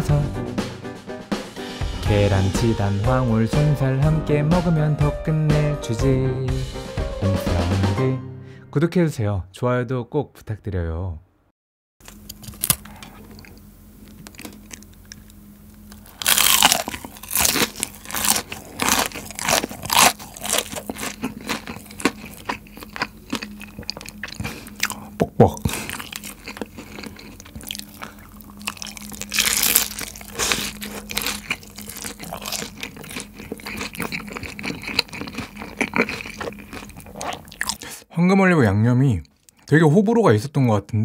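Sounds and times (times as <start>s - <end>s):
crunching and chewing fried chicken: 12.0s - 38.0s.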